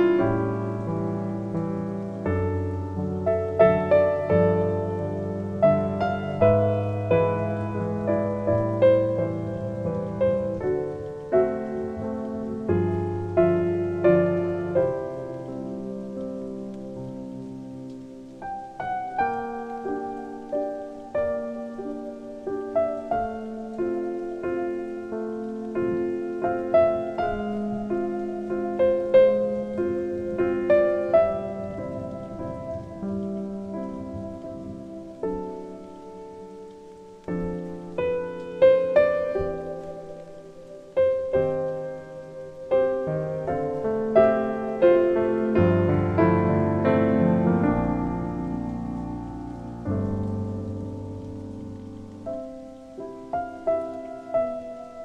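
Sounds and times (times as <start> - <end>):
falling rain: 0.0 - 55.0
solo piano waltz: 0.0 - 55.0.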